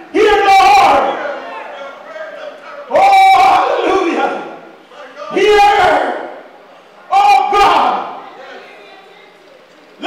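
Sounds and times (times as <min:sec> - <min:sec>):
man shouting through microphone: 0:00.0 - 0:06.4, 0:07.1 - 0:08.2.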